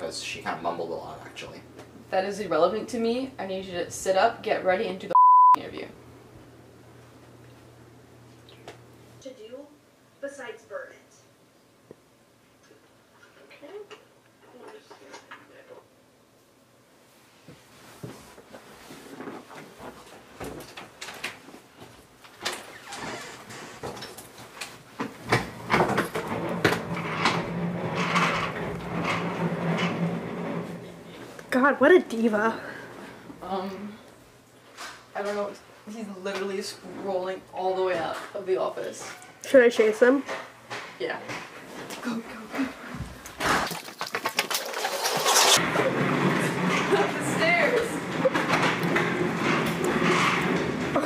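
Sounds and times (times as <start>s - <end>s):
casters rolling on hard floor: 22.4s - 32.1s, 42.9s - 51.0s.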